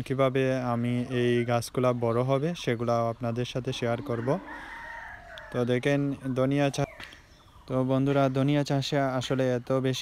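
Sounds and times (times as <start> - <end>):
man's voice: 0.0 - 4.8, 5.5 - 10.0
rooster crowing: 3.8 - 6.0.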